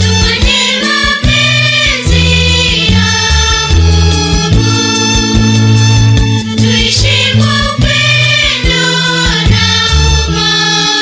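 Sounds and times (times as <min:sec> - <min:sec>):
steady drum beat: 0:00.0 - 0:10.4
bass line: 0:00.0 - 0:10.9
youth choir singing in harmony: 0:00.0 - 0:11.0.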